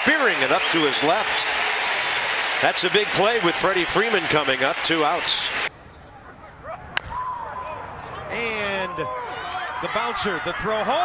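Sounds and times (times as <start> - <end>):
faint crowd noise and voices: 2.5 - 11.0.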